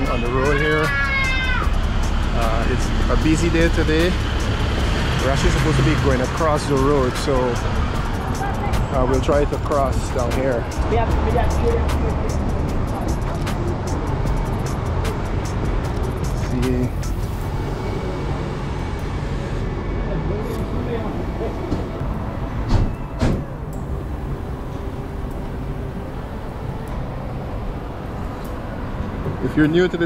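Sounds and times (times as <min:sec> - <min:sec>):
street traffic rumble: 0:00.0 - 0:30.0.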